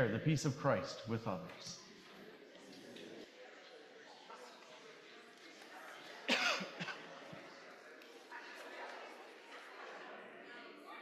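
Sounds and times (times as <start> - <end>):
murmur of congregation: 0.0 - 11.0
person coughing loudly: 6.3 - 7.0.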